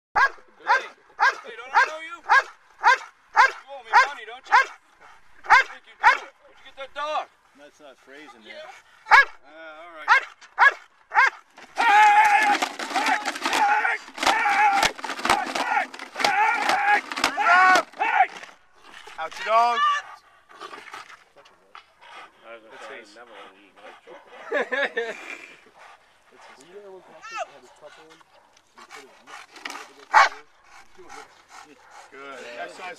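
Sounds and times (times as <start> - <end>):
dog barking loudly: 0.2 - 4.8, 5.4 - 6.3, 9.1 - 9.4, 10.1 - 11.4, 30.1 - 30.4
dog growling and breathing hard: 22.0 - 32.4.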